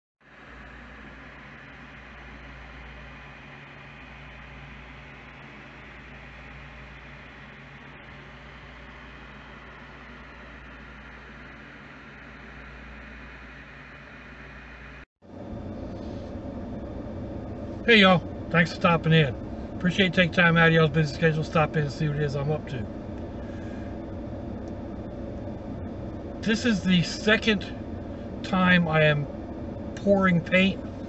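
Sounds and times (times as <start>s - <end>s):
low hum: 0.2s - 31.0s
car cabin noise: 0.5s - 31.0s
man speaking: 17.9s - 22.9s, 26.4s - 27.8s, 28.4s - 29.3s, 30.0s - 30.8s.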